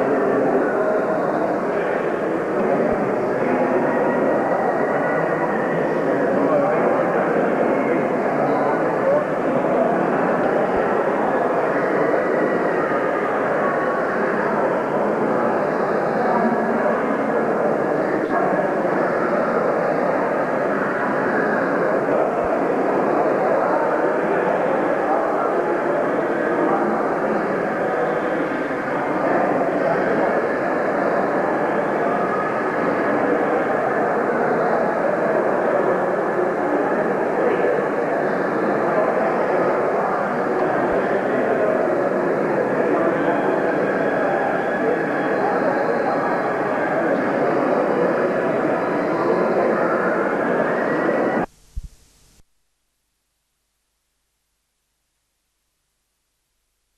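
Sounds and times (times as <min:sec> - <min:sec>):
babble of many people talking: 0:00.0 - 0:51.5.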